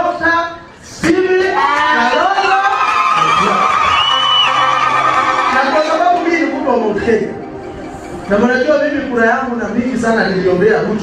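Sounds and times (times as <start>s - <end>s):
audience cheering and shouting: 1.4s - 7.4s.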